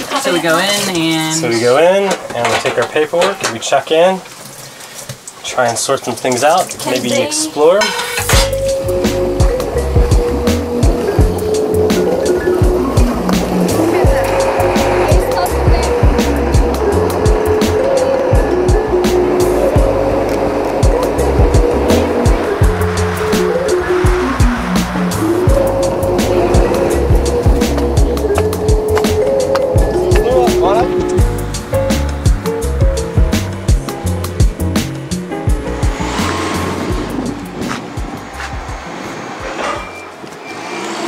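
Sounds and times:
background music with drum beat: 8.3 - 20.1, 20.8 - 38.9.

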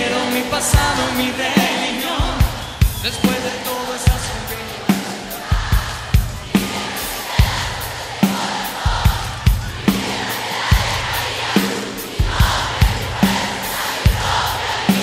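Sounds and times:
live drum kit beat: 0.0 - 15.0
stadium crowd cheering and chanting: 0.0 - 15.0.

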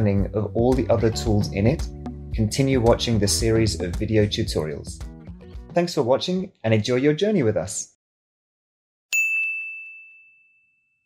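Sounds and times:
high bell-like ding: 9.2 - 11.0.

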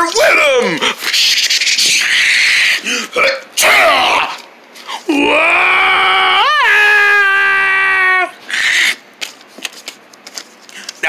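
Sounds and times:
person yelling in cartoon voice: 0.0 - 0.8, 3.2 - 4.4, 5.1 - 8.4
paper rustling: 9.2 - 11.0.

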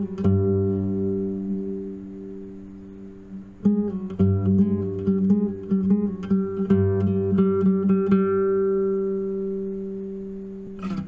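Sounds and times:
classical guitar chord ringing: 0.0 - 11.0.

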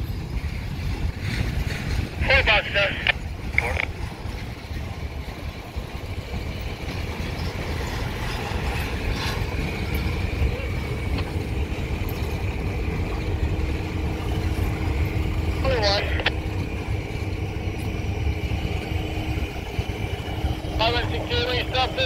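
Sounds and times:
diesel locomotive engine rumbling: 0.0 - 22.0
steady hum: 0.2 - 22.0.

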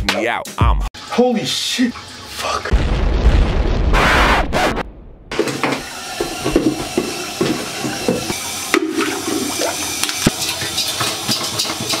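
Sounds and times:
toilet flushing: 1.0 - 2.7, 5.3 - 12.0.

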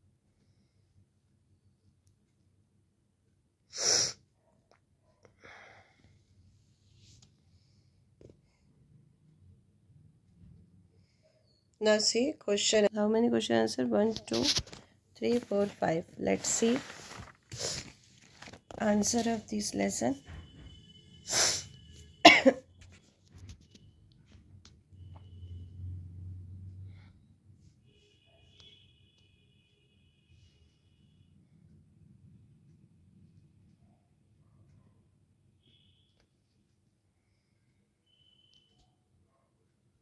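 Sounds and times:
faint room noise: 0.0 - 40.0
sharp burst of breath: 3.7 - 4.2, 21.2 - 21.8
person coughing: 22.2 - 22.7.

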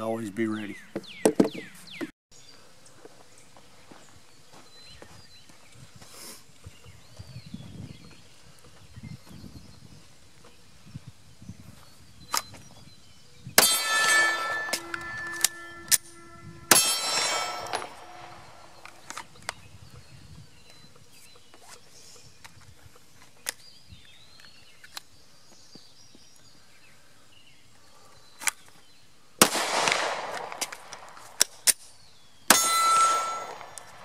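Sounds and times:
pistol shots: 13.6 - 18.8, 29.4 - 31.8, 32.5 - 34.0
metallic ringing: 13.6 - 19.0, 32.5 - 34.0.

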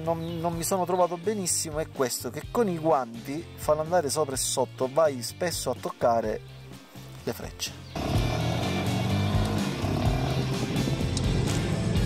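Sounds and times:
background music: 0.0 - 12.0
motorcycle engine running: 8.0 - 12.0.

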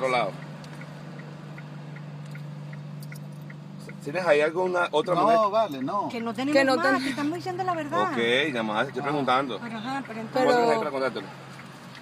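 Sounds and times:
car engine idling: 0.0 - 12.0
faint regular ticking: 0.0 - 12.0.

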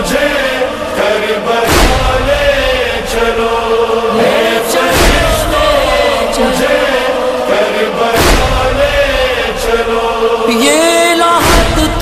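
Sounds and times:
steady held drone tone: 0.0 - 11.2
voices chanting devotional lament: 0.0 - 12.0
deep thump: 1.7 - 2.7, 4.9 - 5.6, 8.2 - 9.1.

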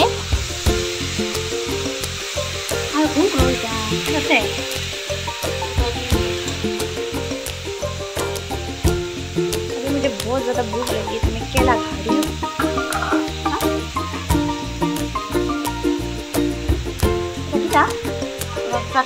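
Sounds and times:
vegetables sizzling in pan: 0.0 - 19.0
utensil clicking on pan: 9.5 - 11.3.

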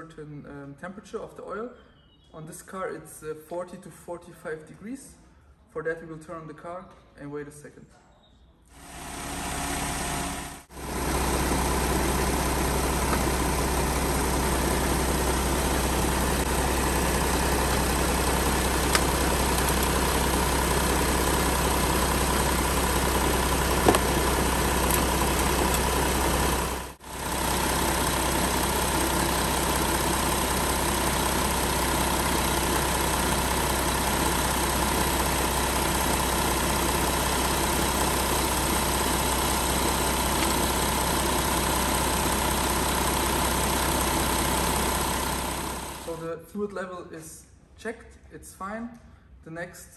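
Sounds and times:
car engine idling: 8.8 - 46.2.

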